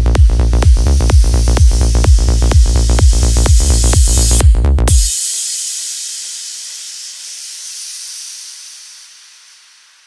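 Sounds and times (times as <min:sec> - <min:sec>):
synthesized white-noise wash: 0:00.0 - 0:10.0.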